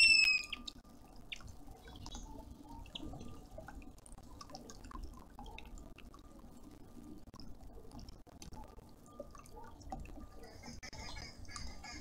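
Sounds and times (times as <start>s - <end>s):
bird whistled note: 0.0s - 0.6s
faint bird chirps: 0.0s - 3.4s
water trickling from fountain: 0.3s - 12.0s.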